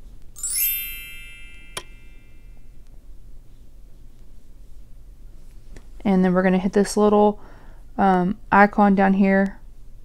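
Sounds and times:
bright chime ringing: 0.4s - 2.6s.

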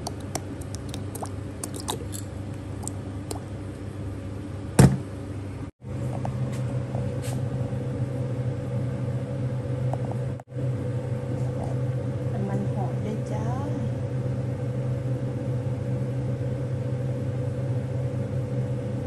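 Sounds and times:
kitchen appliance humming: 0.0s - 5.0s.

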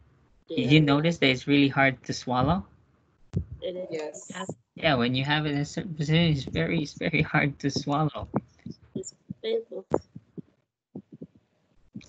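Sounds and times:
faint low thumps: 0.5s - 2.6s, 3.3s - 10.4s.

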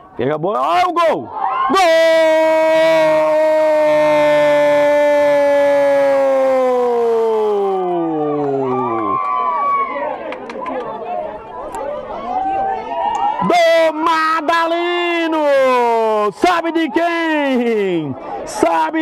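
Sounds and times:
overlapping voices and shouts: 0.7s - 19.0s
commentator's long goal cry: 1.7s - 8.0s.

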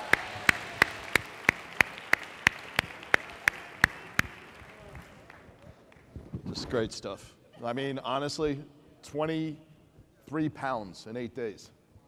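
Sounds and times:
audience applause: 0.0s - 5.6s
hand claps close to microphone: 0.0s - 6.2s.

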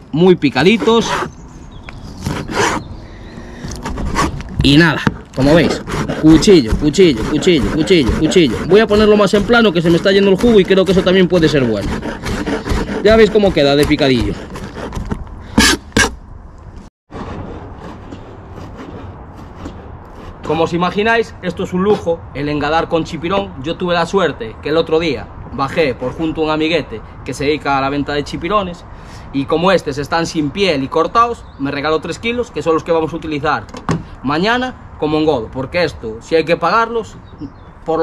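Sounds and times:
knife chopping on plastic board: 9.9s - 16.1s.

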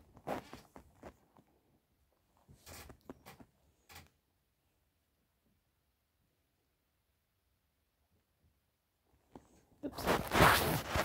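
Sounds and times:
yarn blanket rustling on microphone: 0.0s - 1.5s, 9.4s - 11.0s.

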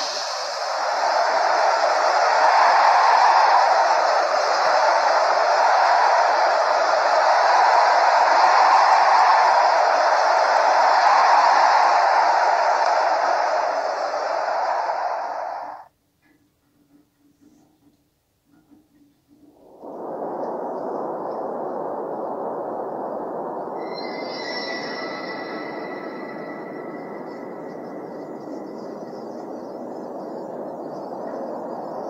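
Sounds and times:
steady rushing noise: 0.0s - 15.9s, 19.4s - 32.0s.

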